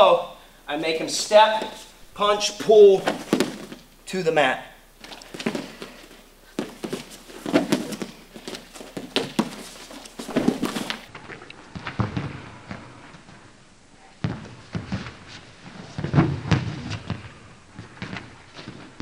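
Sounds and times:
feet scuffing on foam mat: 0:00.8 - 0:03.9, 0:05.0 - 0:11.1
bodies thumping onto mat: 0:01.5 - 0:03.9, 0:05.0 - 0:11.1.

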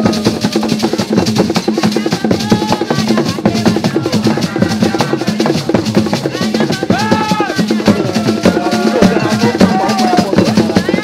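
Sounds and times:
drum ensemble playing: 0:00.0 - 0:11.0.

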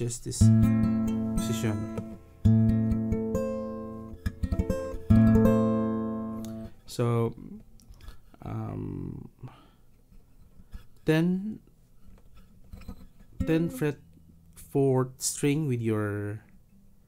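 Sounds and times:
acoustic guitar chord strums: 0:00.0 - 0:07.0, 0:12.7 - 0:14.6.

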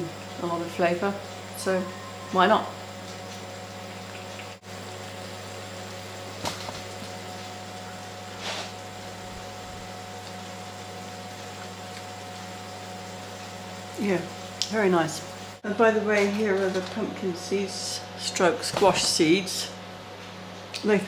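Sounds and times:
low kitchen hum: 0:00.0 - 0:21.0.

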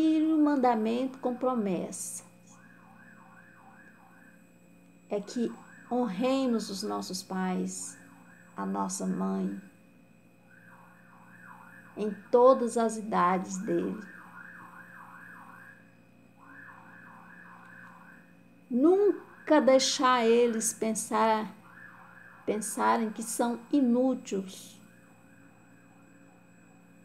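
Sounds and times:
distant electronic siren: 0:00.0 - 0:27.0.

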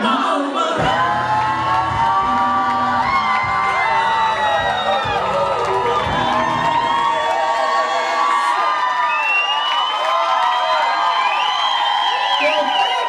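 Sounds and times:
music bass: 0:00.8 - 0:07.4
crowd cheering and screaming: 0:00.8 - 0:13.0.

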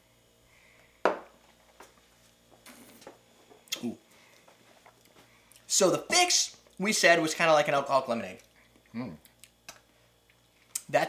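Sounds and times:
glass knocking on bar top: 0:01.0 - 0:01.3.

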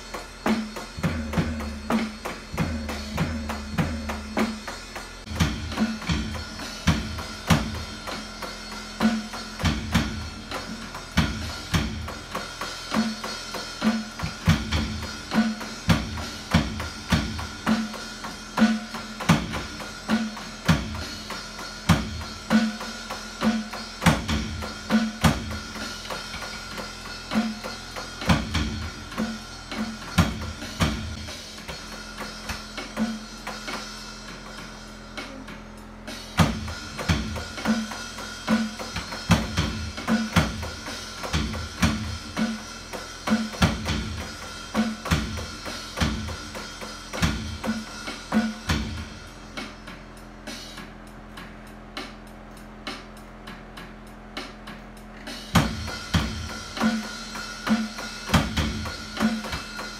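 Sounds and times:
electronic drum kit beat: 0:00.0 - 0:59.9.

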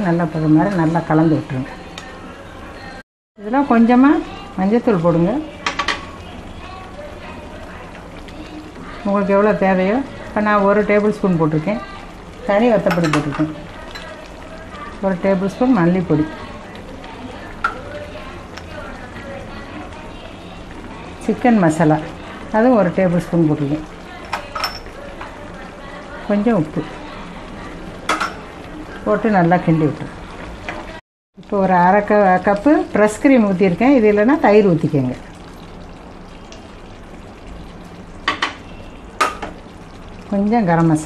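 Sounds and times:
gravy hissing in a pan: 0:03.4 - 0:31.0.

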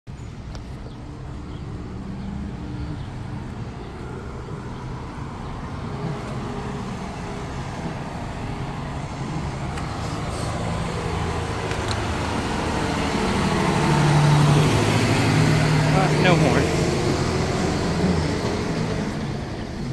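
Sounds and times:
semi truck diesel engine running: 0:00.1 - 0:19.9.

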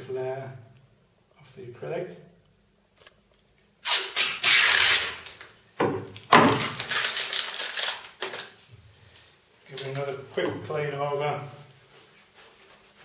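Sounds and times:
plastic film peeling off crackling: 0:03.8 - 0:05.6, 0:06.5 - 0:08.7.

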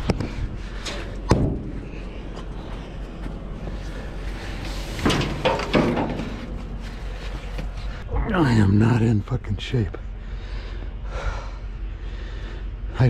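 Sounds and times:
knocks and thumps on steel: 0:01.3 - 0:01.9, 0:05.0 - 0:06.7.

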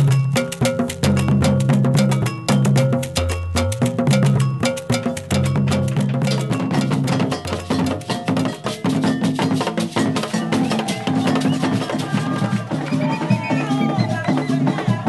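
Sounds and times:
fast hand-drum rhythm: 0:00.0 - 0:15.0
ringing bell pattern: 0:00.0 - 0:15.0.

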